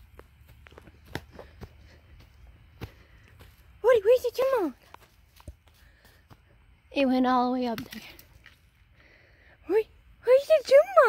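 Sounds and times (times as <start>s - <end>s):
footsteps on grass and dirt: 0.0s - 7.2s.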